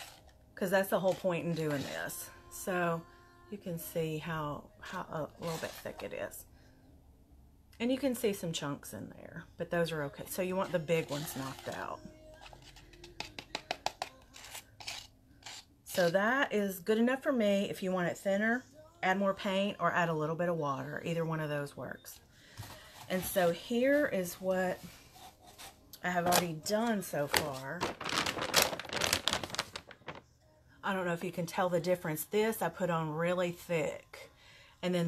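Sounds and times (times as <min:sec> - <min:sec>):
brush stirring thick paint: 0:00.0 - 0:02.1, 0:10.6 - 0:16.2
woman speaking: 0:00.6 - 0:06.4, 0:07.8 - 0:12.1, 0:15.9 - 0:22.2, 0:23.1 - 0:24.9, 0:26.0 - 0:27.9, 0:30.8 - 0:35.0.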